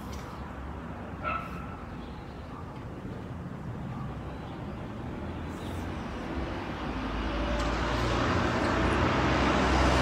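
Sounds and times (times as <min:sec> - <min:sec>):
outdoor background noise: 0:00.0 - 0:10.0
dog barking: 0:01.2 - 0:01.9.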